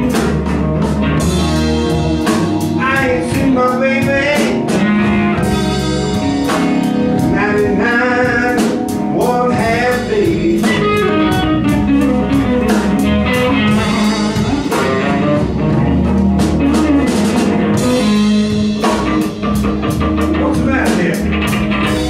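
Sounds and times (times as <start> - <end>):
drums with cymbal strokes: 0.0 - 22.0
electric guitar with bent notes: 0.0 - 22.0
keyboard: 0.0 - 22.0.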